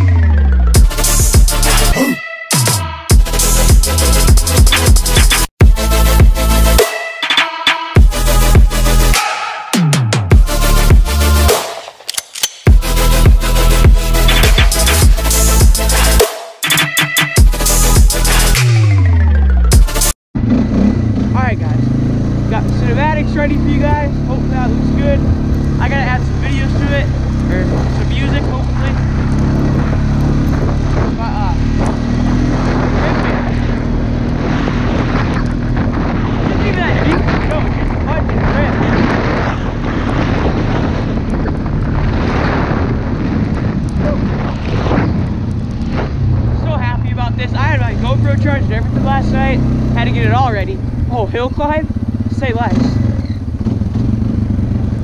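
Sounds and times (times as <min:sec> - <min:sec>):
quad bike engine running: 0:20.4 - 0:55.0
wind rushing over microphone: 0:20.4 - 0:55.0.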